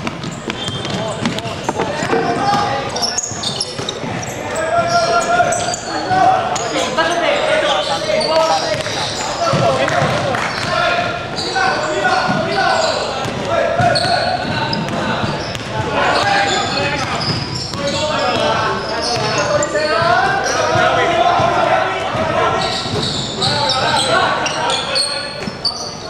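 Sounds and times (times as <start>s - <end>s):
shoes on court: 0.0s - 6.3s, 7.8s - 24.6s
players' voices echoing: 0.0s - 26.0s
basketball bouncing on hardwood: 9.5s - 10.7s.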